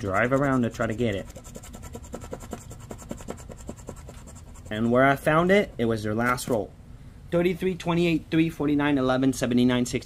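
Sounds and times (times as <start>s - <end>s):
scratcher scraping lottery ticket: 0.0s - 4.8s.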